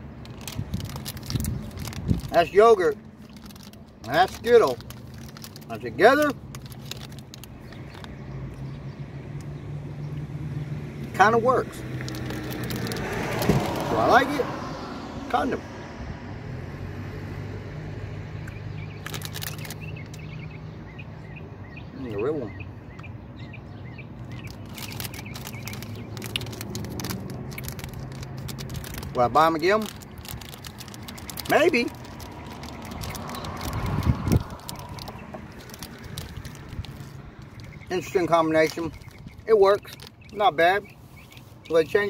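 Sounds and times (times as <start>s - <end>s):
plastic bag crackling: 0.2s - 8.1s, 11.9s - 14.1s, 18.9s - 20.2s, 24.2s - 40.4s
small bird chirping: 18.4s - 27.8s, 30.0s - 42.0s.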